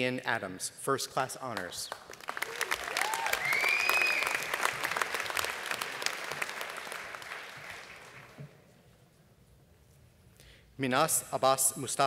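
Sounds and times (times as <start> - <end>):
audience applauding: 1.9 - 8.4
crowd cheering: 2.3 - 8.4.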